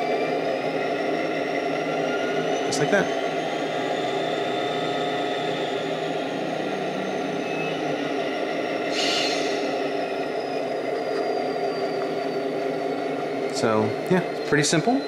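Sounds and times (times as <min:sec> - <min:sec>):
diesel locomotive engine running: 0:00.0 - 0:15.0
high whine falling in pitch: 0:01.6 - 0:15.0
brief hiss: 0:08.9 - 0:09.6.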